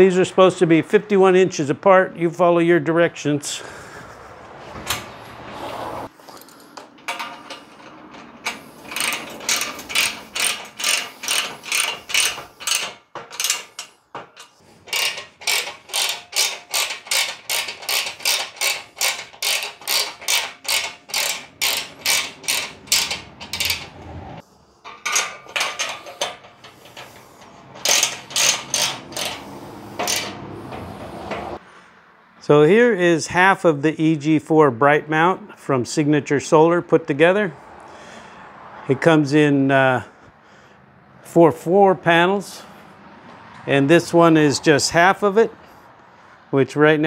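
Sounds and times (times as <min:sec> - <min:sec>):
hand ratchet clicking: 0:06.2 - 0:31.6.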